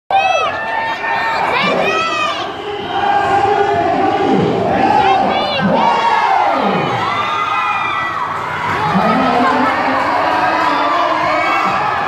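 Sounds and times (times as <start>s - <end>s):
crowd cheering and shouting: 0.1s - 12.0s.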